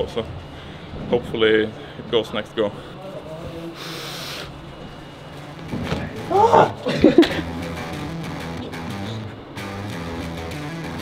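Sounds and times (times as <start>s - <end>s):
low room hum: 0.0s - 10.6s.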